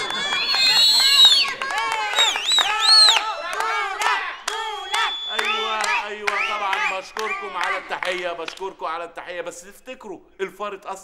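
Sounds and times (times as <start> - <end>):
women cheering: 0.0 - 5.8
people clapping: 0.0 - 8.8.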